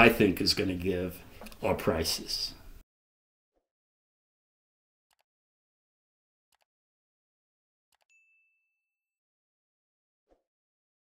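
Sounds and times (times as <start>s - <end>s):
high bell ding: 8.1s - 8.9s.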